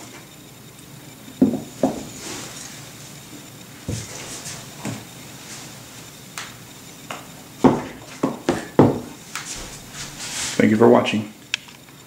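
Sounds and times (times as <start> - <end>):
boot knocking on countertop: 1.4 - 2.1, 7.6 - 9.7.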